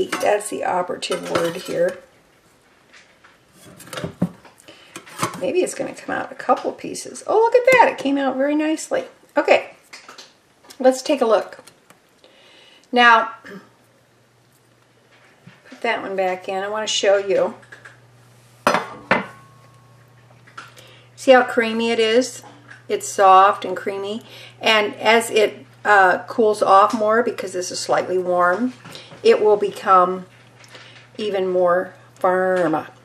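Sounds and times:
metal spatula scraping glass dish: 1.1 - 2.0.

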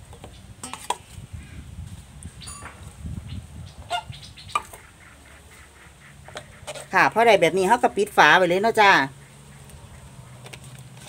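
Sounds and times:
fowl calling: 3.9 - 7.1.

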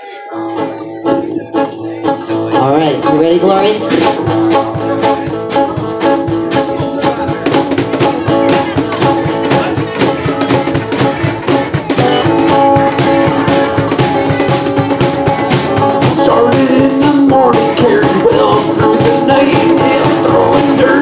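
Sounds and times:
harmonica: 0.0 - 2.6, 11.5 - 16.5
cajon beat: 0.0 - 21.0
electric guitar: 0.0 - 21.0
strummed acoustic guitar: 0.0 - 21.0
electric bass: 0.4 - 21.0.

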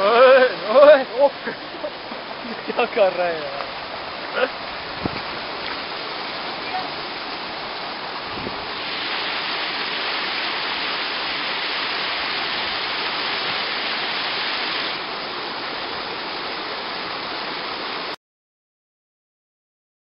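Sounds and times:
waterfall pouring into pool: 0.0 - 18.2.

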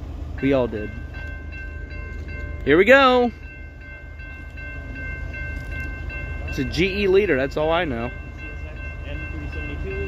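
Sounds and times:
crossing warning bell ringing: 0.0 - 10.0
diesel locomotives rumbling: 0.0 - 10.0.

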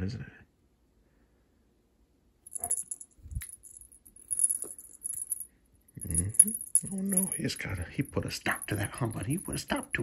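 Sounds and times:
cat toy jingling: 2.5 - 10.0.

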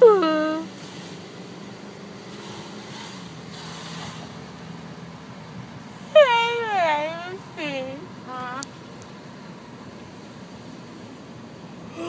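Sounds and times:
woman crying and wailing: 0.0 - 0.7, 6.1 - 7.8
car cabin hum: 5.4 - 10.3.

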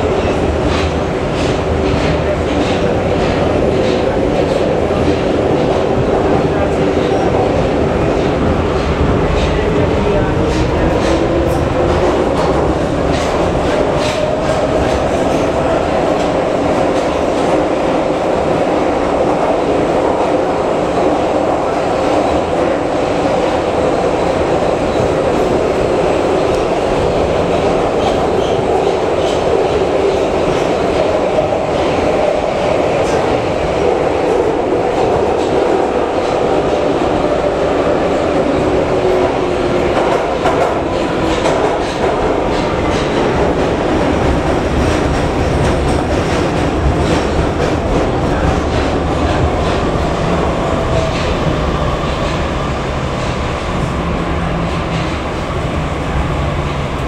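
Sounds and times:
wheels rumbling on rails: 0.0 - 57.0.

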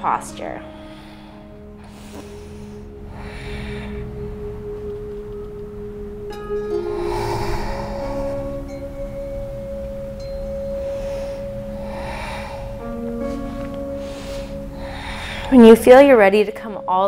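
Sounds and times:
ambient music with bell-like tones: 0.0 - 17.0
breathy hiss: 0.6 - 4.7, 6.7 - 15.7.

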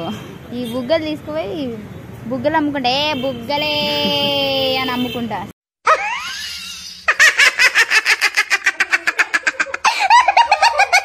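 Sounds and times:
comic cackling sound effect: 5.8 - 11.0.

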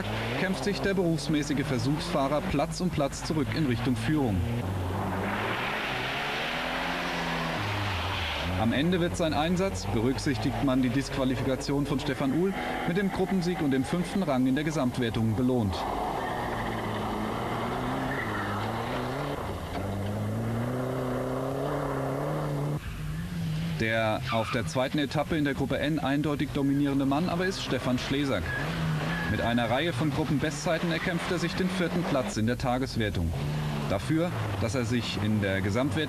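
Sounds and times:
rally car engine passing: 0.0 - 36.0.

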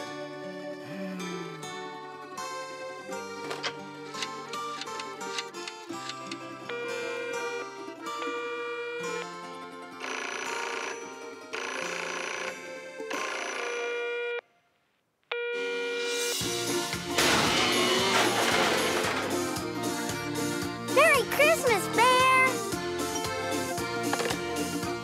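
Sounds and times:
cartoon background music: 16.1 - 25.0.

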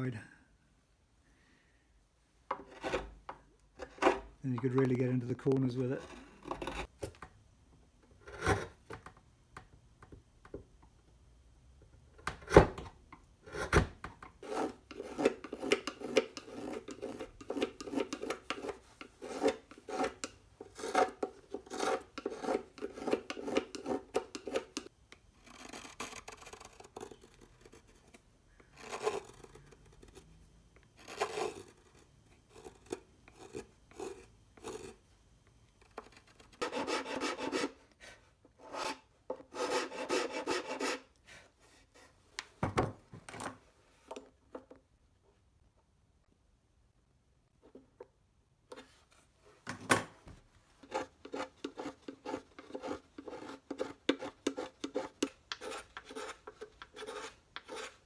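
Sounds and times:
knife scraping wood: 2.5 - 3.2, 5.7 - 6.9, 14.4 - 30.3, 31.0 - 35.0, 35.9 - 42.2, 50.8 - 58.0.

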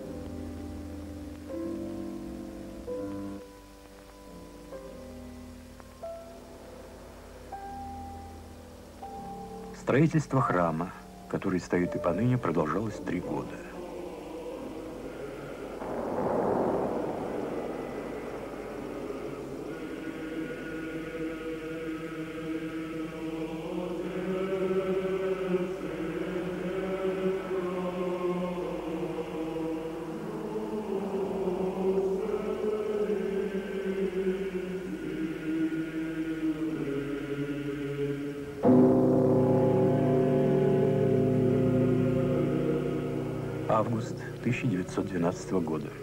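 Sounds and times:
choir chanting: 11.5 - 46.0.

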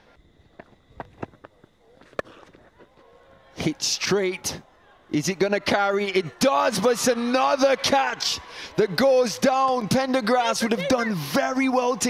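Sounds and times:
cricket ground ambience: 0.0 - 12.0.

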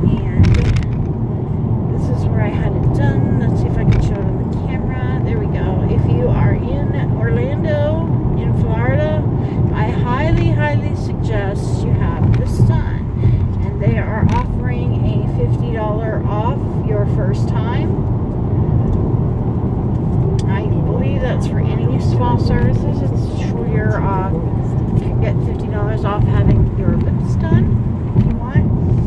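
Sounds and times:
woman talking: 0.0 - 1.0, 1.9 - 18.0, 20.4 - 28.7
car cabin road and engine rumble: 0.0 - 29.0.

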